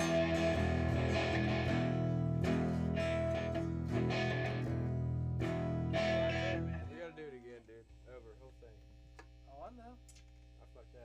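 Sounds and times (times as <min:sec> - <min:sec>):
guitar strumming chords: 0:00.0 - 0:07.4.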